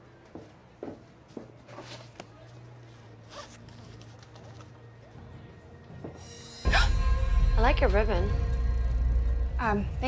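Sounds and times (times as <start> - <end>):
low hum: 6.6 - 10.0.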